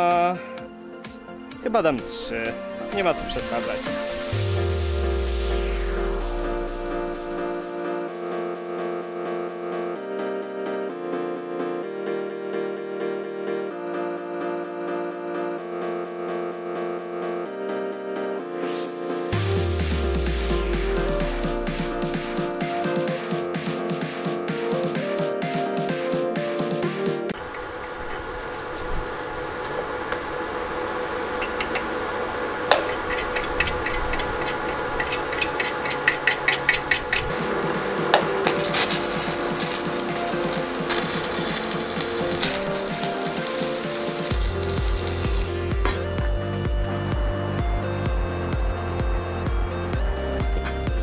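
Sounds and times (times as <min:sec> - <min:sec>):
electronic music: 0:00.0 - 0:16.0, 0:17.5 - 0:28.4, 0:29.1 - 0:51.0
arc welding crackle: 0:03.0 - 0:07.2, 0:27.3 - 0:46.2
heavy bass beat: 0:03.8 - 0:07.6, 0:19.3 - 0:25.2, 0:37.3 - 0:51.0.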